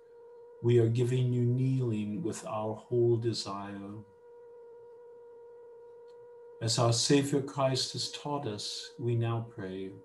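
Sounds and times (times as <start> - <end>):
faint steady tone: 0.0 - 10.0.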